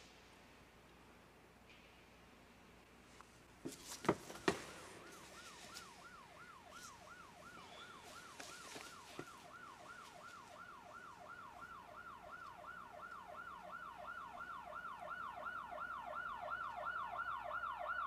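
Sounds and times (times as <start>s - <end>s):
emergency vehicle siren yelping: 5.0s - 18.0s.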